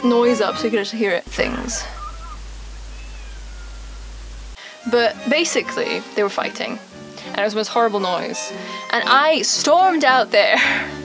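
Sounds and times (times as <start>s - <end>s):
mains hum: 1.2s - 9.2s
distant cats wailing: 1.3s - 4.6s
steady hiss: 1.3s - 11.0s.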